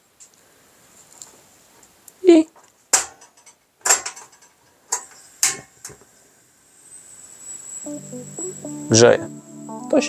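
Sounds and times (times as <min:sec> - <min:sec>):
gas stove hiss: 0:00.0 - 0:10.0
metallic clicks and knocks: 0:02.6 - 0:06.0
thin high whine: 0:06.2 - 0:10.0.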